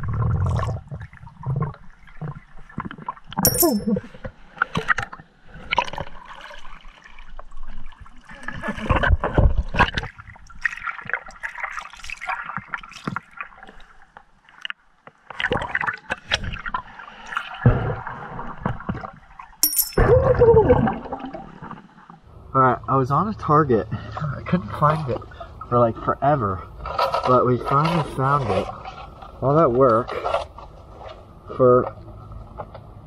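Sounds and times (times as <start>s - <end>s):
muffled underwater sloshing and bubbling: 0.0s - 3.4s, 23.4s - 27.2s.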